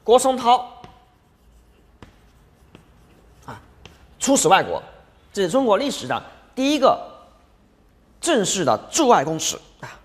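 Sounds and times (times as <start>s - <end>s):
chalk scratching on blackboard: 0.2s - 4.5s
chalk tapping on board: 0.5s - 4.2s.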